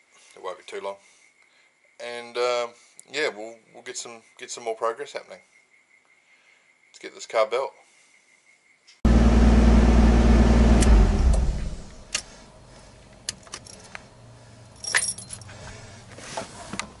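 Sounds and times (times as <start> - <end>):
car engine running and winding down: 9.1 - 12.4
keys jangling: 13.4 - 14.0, 14.8 - 15.6.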